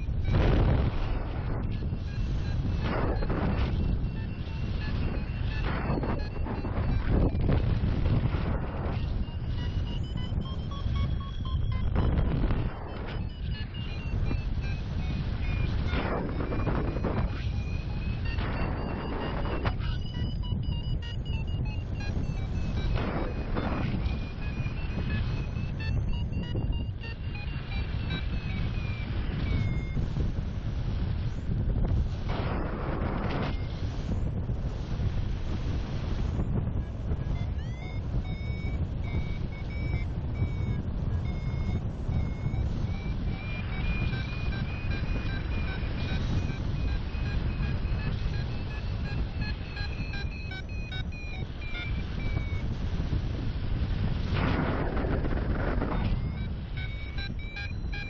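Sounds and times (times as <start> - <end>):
variometer beeping rapidly: 0.0 - 30.6, 31.3 - 35.4, 36.2 - 58.0
wind rushing over microphone: 0.0 - 58.0.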